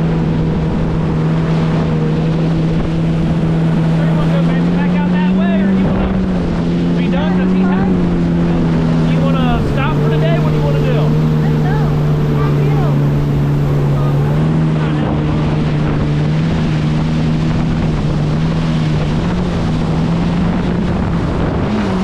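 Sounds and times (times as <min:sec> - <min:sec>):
personal watercraft engine running: 0:00.0 - 0:22.0.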